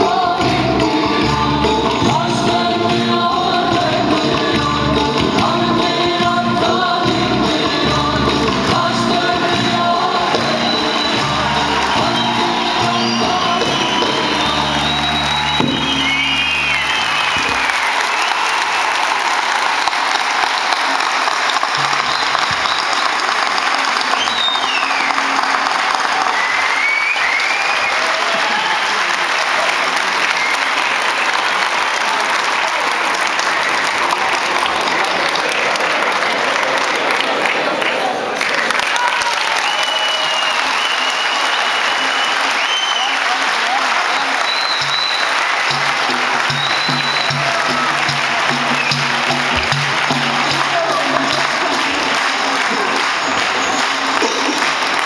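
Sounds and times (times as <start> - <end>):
audience applause: 6.8 - 55.0
whistles from audience: 10.4 - 19.2, 21.8 - 23.2, 24.0 - 29.2, 30.1 - 31.0, 39.2 - 49.2, 53.2 - 54.3
folk ensemble with lutes and percussion: 45.7 - 54.9.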